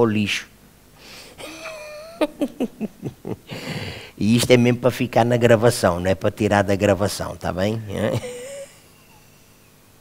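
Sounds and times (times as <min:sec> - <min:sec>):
drawn breath: 0:01.0 - 0:01.4, 0:03.5 - 0:04.2
man laughing: 0:01.4 - 0:03.8, 0:07.8 - 0:09.2.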